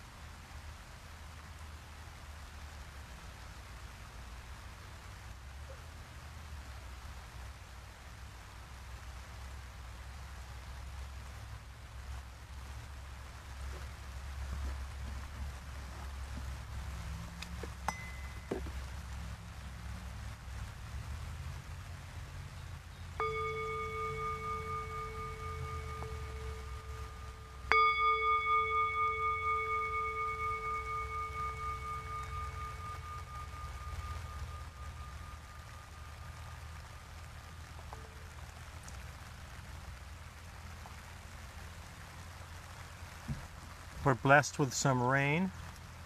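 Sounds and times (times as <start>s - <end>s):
singing bowl ringing: 17.9s - 18.8s, 23.2s - 38.0s.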